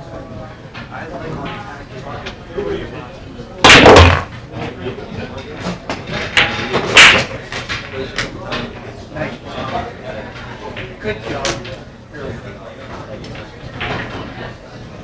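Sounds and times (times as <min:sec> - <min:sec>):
pool balls clacking: 0:03.6 - 0:11.8, 0:13.0 - 0:14.6
pool cue cracking balls: 0:03.6 - 0:11.8.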